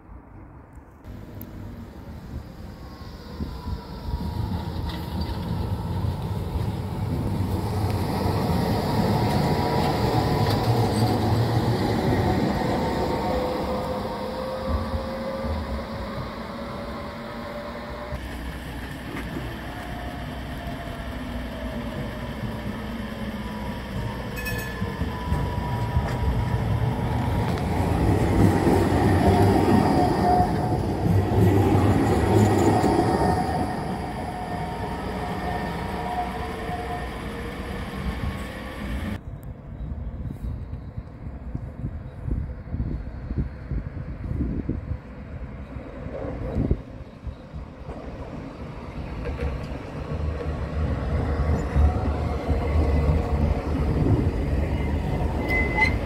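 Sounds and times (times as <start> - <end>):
tram wheels rumbling on rail: 0.0 - 56.0
tram wheel squeal: 1.1 - 41.4, 45.5 - 56.0.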